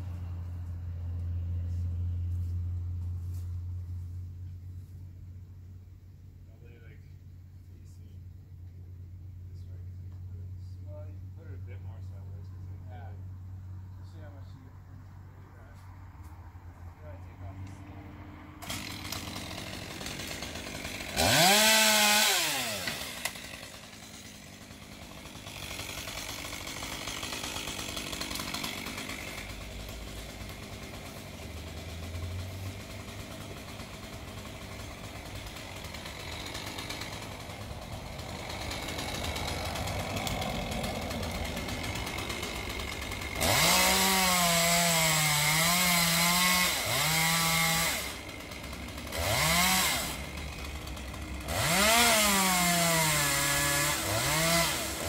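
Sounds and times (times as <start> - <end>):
chainsaw cutting wood: 17.5 - 55.0.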